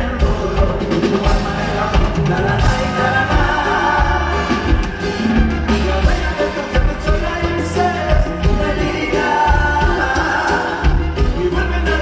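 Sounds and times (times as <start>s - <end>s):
live band playing dance music: 0.0s - 12.0s
voices singing together: 0.2s - 12.0s.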